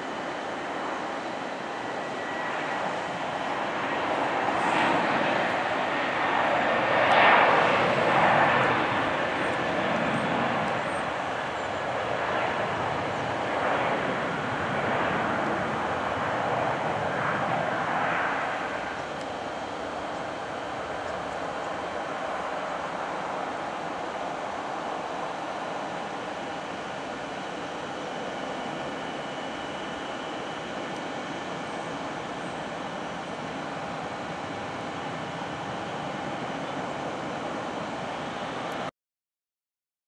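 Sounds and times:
jet engines roaring at takeoff: 0.0s - 38.9s.

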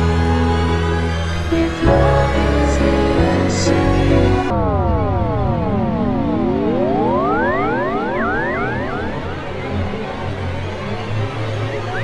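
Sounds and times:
rising synthesizer sweeps: 1.1s - 12.0s
synthesizer tone gliding down: 1.1s - 12.0s.

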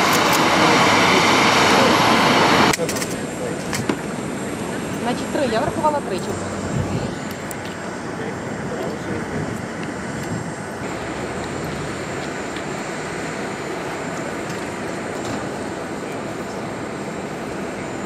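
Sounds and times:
jet engine noise with high whine: 0.0s - 18.0s.

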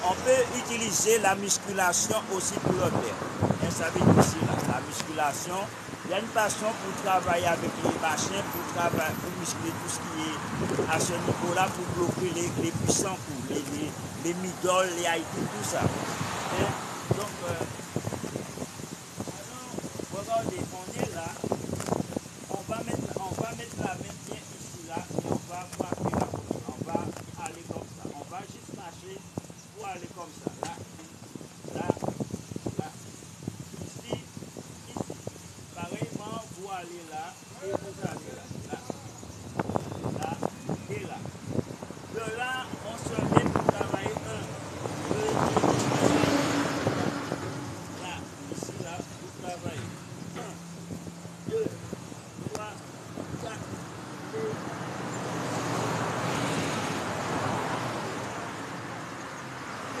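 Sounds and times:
person speaking: 0.0s - 17.7s
vehicle passing by: 0.0s - 19.6s, 40.9s - 60.0s.

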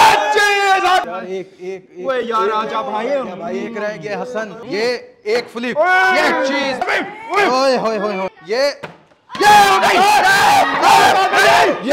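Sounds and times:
group of young men shouting: 0.0s - 1.1s, 5.8s - 7.6s, 9.3s - 11.9s.

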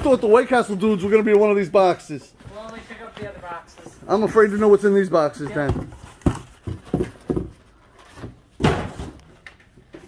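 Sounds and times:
cardboard boxes thumping down: 5.6s - 9.2s.

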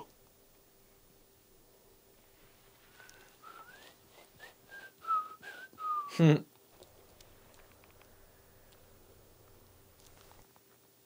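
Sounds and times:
person whistling: 3.0s - 6.3s.

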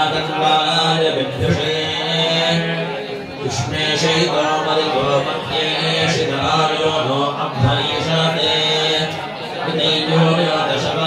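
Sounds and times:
priests chanting together: 0.0s - 11.0s.

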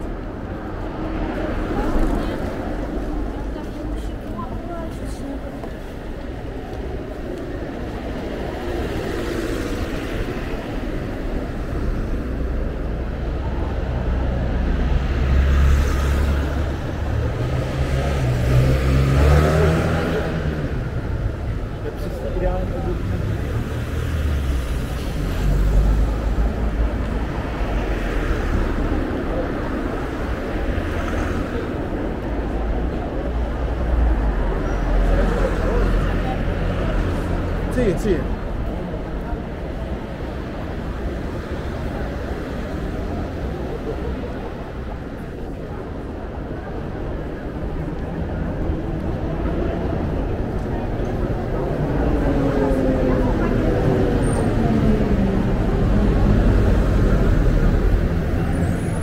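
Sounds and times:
cars driving past: 0.0s - 59.0s
people talking: 1.2s - 6.8s, 30.9s - 40.7s, 41.8s - 59.0s.

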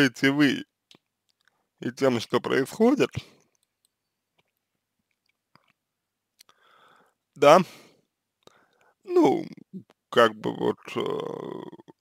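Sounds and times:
man speaking: 0.0s - 0.7s, 1.8s - 3.4s, 7.4s - 7.8s, 9.1s - 12.0s
faint mouth clicks: 6.4s - 6.6s
soft breath: 6.5s - 9.0s.

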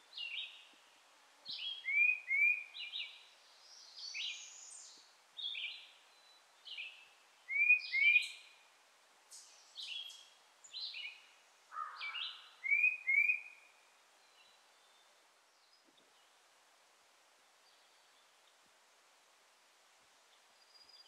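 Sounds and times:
songbird singing: 0.0s - 18.8s, 20.1s - 21.0s
faint steady hiss: 0.0s - 21.0s.

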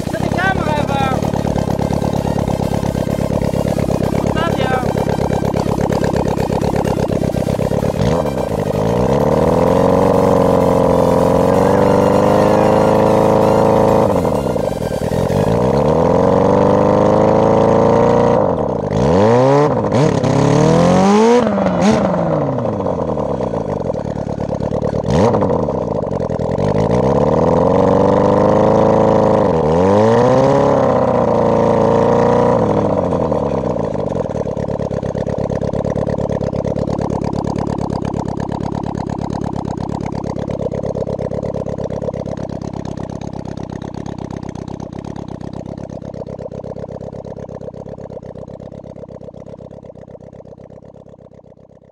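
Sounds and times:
motorcycle engine revving: 0.0s - 51.9s.

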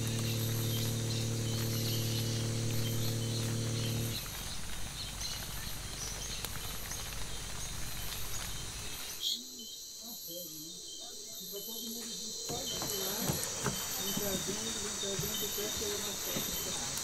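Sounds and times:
outboard motor humming: 0.0s - 7.6s, 12.5s - 17.0s
faint insect chirping: 0.0s - 17.0s.

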